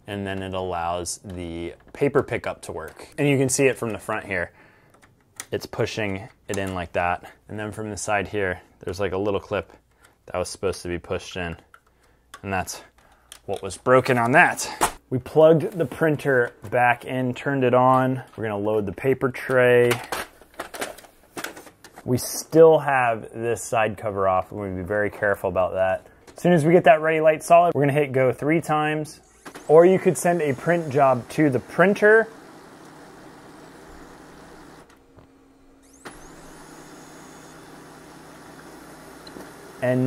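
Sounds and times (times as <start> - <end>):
printer rising whine: 29.2 - 40.0
laser printer whirring: 29.4 - 34.9, 35.7 - 40.0.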